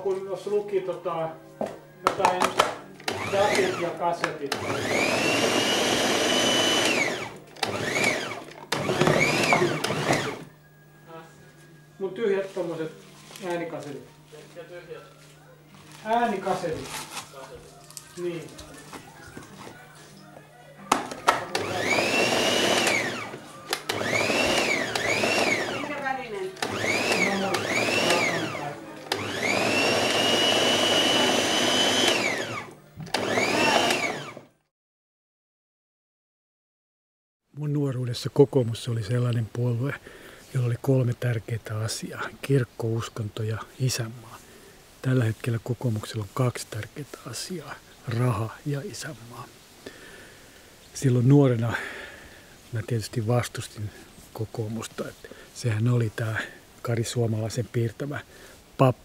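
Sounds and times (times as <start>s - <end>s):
electric blender running: 2.0s - 10.6s, 20.9s - 34.6s.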